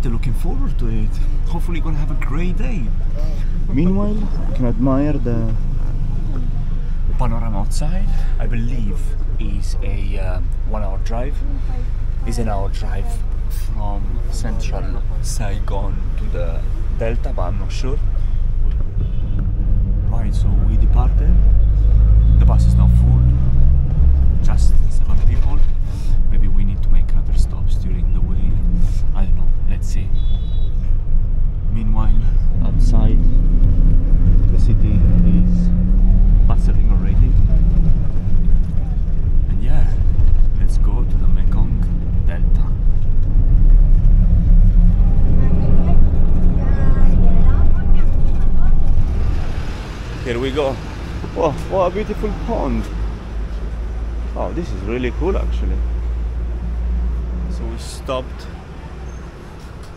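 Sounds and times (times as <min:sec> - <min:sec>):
bus engine rumble and road noise: 0:00.0 - 0:59.9.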